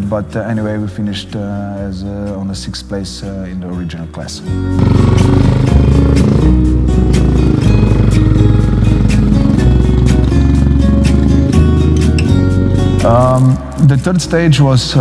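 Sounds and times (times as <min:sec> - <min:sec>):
background music with steady beat: 0:00.0 - 0:15.0
motorcycle engine running: 0:04.8 - 0:13.6.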